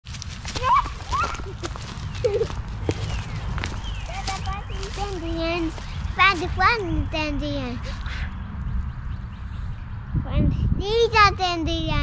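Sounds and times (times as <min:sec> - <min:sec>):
wind rumbling on microphone: 0:00.1 - 0:12.0
toddler babbling: 0:04.1 - 0:08.0.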